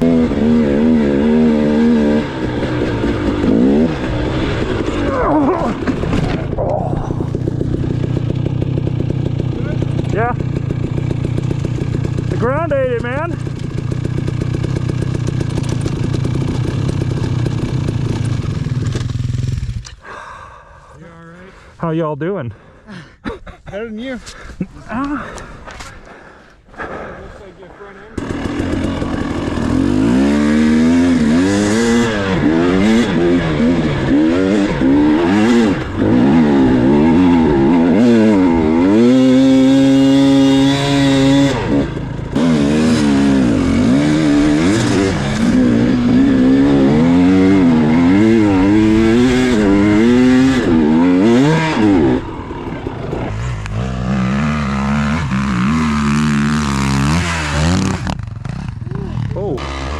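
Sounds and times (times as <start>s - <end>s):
dirt bike engine revving: 0.0s - 19.8s, 28.1s - 59.9s.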